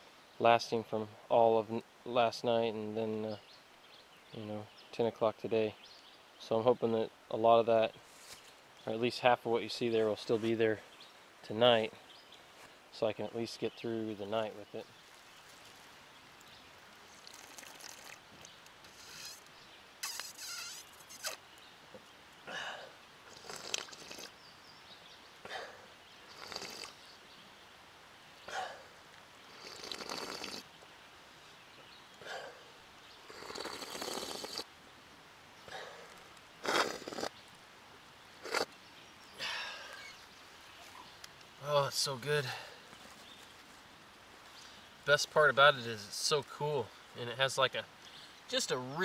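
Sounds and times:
slurping sips of water: 23.3s - 24.3s, 36.6s - 37.3s, 38.4s - 38.7s.

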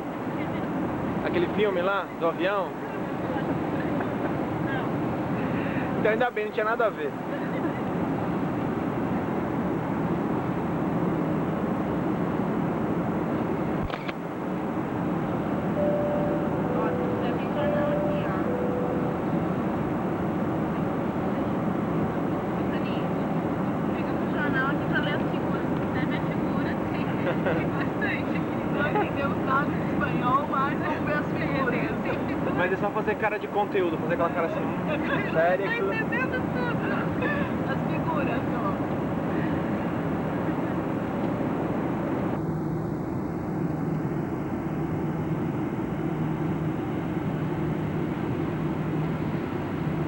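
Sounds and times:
airliner engine and airflow noise: 0.0s - 50.0s
soft two-note tone: 15.7s - 20.1s.

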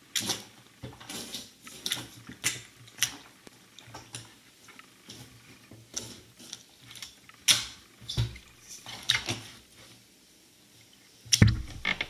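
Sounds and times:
slime dripping and squelching: 6.0s - 9.5s.

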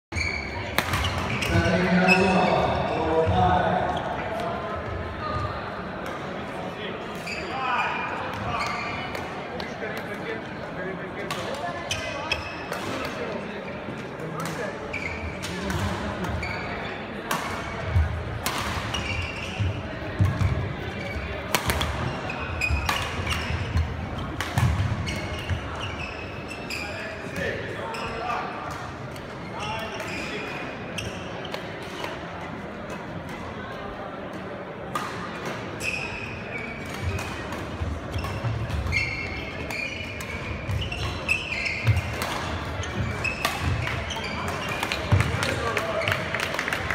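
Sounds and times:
shoe squeaks on court floor: 0.1s - 3.3s, 7.1s - 9.2s, 11.8s - 13.1s, 14.8s - 17.1s, 18.8s - 28.5s, 29.4s - 32.2s, 35.7s - 46.4s
voices in sports hall: 0.1s - 46.9s
racket hitting shuttlecock: 39.6s - 45.8s.

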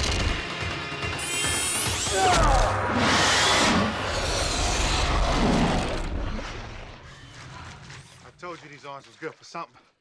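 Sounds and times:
film music: 0.0s - 9.9s.

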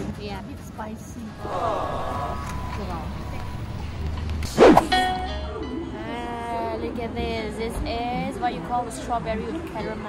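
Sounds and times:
ringing chime-like tone: 2.3s - 4.0s
whoosh sound effect: 4.5s - 5.0s.

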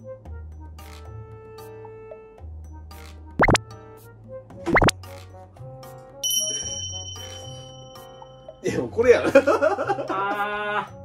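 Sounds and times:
light background music: 0.0s - 11.0s
bright bell-like ding: 6.2s - 8.7s.

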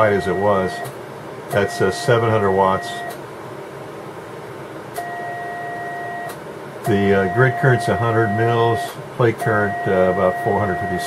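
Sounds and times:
two-tone test signal: 0.0s - 0.9s, 1.5s - 3.2s, 5.0s - 11.0s
click: 6.2s - 6.4s.

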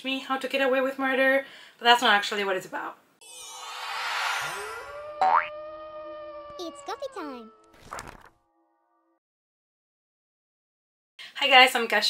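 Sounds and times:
whooshing swell: 3.2s - 6.7s
rising cartoon boing: 3.3s - 8.0s.

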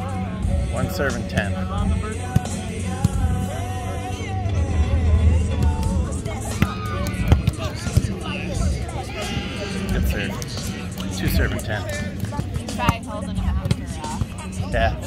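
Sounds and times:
background chatter: 0.0s - 15.0s
music with singing: 0.0s - 15.0s.

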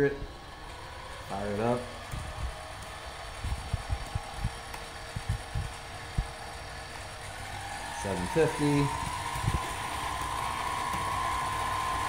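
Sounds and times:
lathe motor faint whine: 0.0s - 12.0s.

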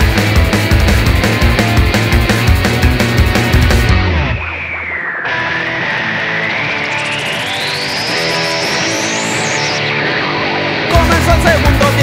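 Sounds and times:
bass guitar: 0.0s - 12.0s
electric guitar: 0.0s - 12.0s
high sustained tone: 4.0s - 10.3s.

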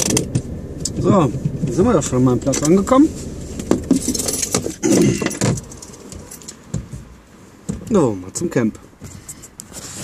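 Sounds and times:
car keys jangling: 2.5s - 6.7s.

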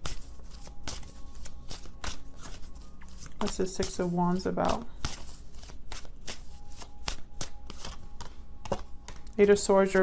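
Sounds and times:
cards being shuffled: 0.0s - 9.4s.

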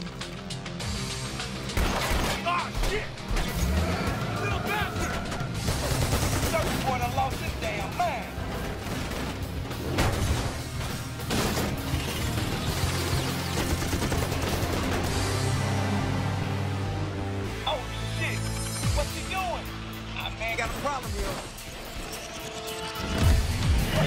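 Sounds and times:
action film music score: 0.0s - 24.0s
people shouting: 2.4s - 5.8s
gunfire: 5.6s - 7.6s.

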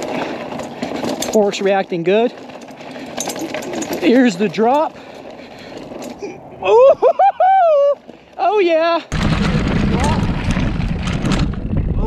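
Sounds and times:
bike tyres rumbling over dirt: 0.0s - 6.5s, 7.4s - 12.0s
rider whooping: 6.1s - 8.1s.

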